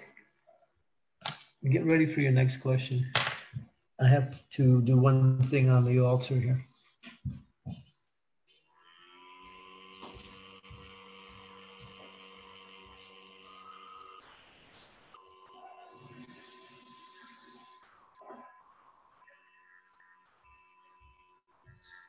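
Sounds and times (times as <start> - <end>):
faint sustained music tones: 8.8 - 22.0.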